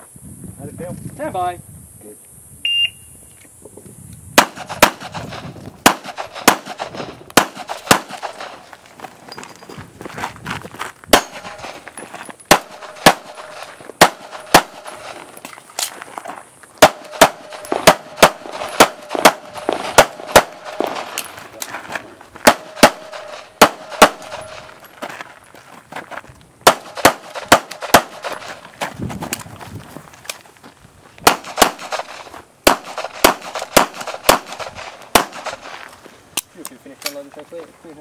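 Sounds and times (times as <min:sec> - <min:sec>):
handgun shots: 0:04.4 - 0:08.6, 0:11.1 - 0:11.8, 0:12.5 - 0:15.9, 0:16.8 - 0:21.3, 0:22.4 - 0:24.8, 0:26.6 - 0:28.6, 0:31.2 - 0:35.8.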